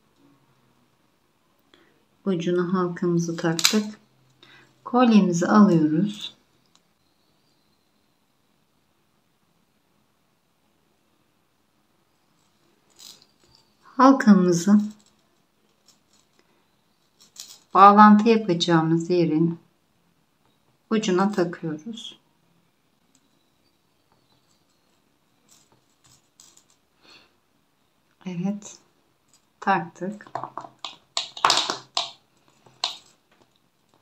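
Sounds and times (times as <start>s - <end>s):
metal chain jingling: 12.9s - 13.7s, 17.2s - 17.7s.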